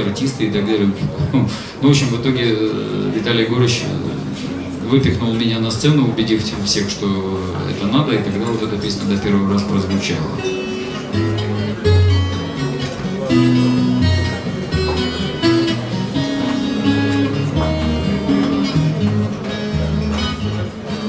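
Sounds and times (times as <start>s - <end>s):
acoustic guitar playing chords: 2.0s - 21.0s.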